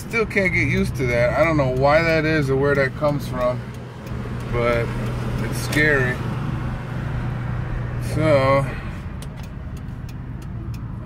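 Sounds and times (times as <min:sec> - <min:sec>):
engine hum inside cab: 0:00.0 - 0:11.0
road noise: 0:00.0 - 0:11.0.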